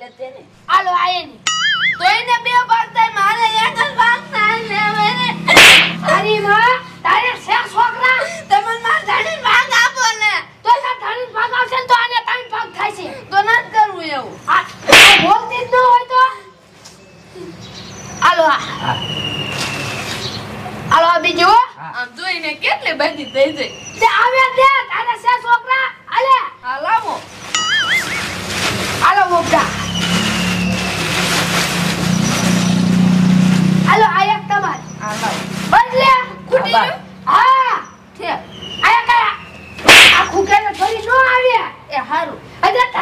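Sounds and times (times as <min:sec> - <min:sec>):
vehicle engine humming: 0:27.6 - 0:38.2.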